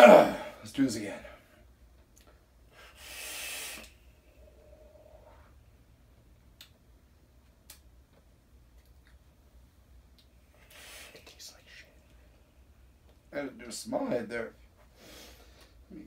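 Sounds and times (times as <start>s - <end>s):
hiss of air through vape: 2.8s - 5.5s, 10.6s - 11.9s.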